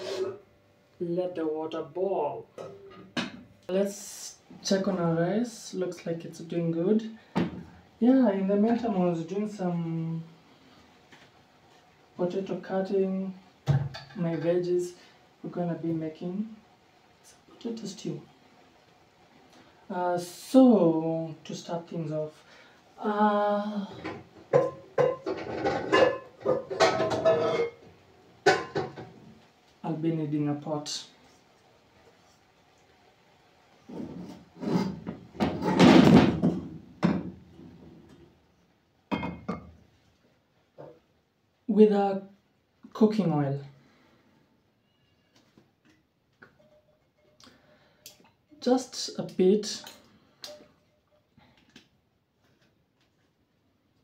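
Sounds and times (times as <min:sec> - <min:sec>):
kitchen items clicking and knocking: 0:24.0 - 0:27.8, 0:28.5 - 0:29.1
metal pot and lid clattering: 0:24.0 - 0:27.8, 0:28.4 - 0:29.1.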